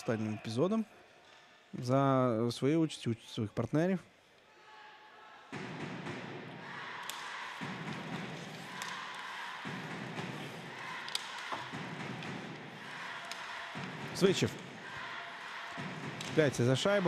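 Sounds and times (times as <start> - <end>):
crowd and rink noise: 0.0 - 17.0
sticks and puck clicking: 7.0 - 14.7, 15.3 - 17.0.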